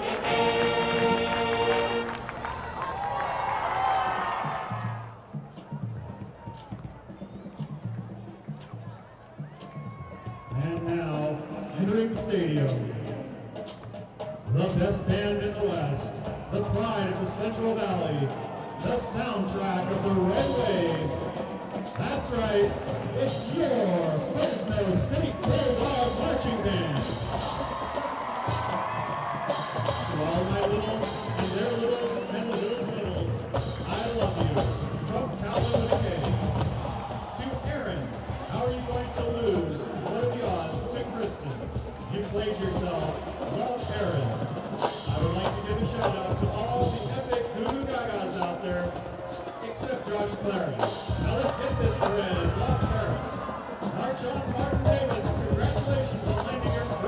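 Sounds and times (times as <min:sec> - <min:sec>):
crowd voices and calls: 0:00.0 - 0:57.0
marching band music: 0:00.0 - 0:57.0.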